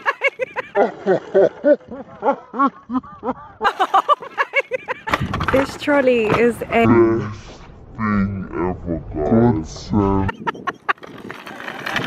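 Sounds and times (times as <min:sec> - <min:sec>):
wheels rolling: 0:04.3 - 0:06.8, 0:10.3 - 0:12.0
trolley rattling over concrete: 0:05.2 - 0:06.6, 0:10.9 - 0:12.0.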